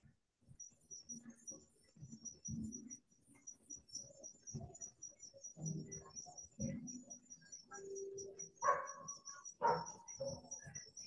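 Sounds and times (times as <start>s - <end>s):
crickets chirping: 3.8s - 11.0s.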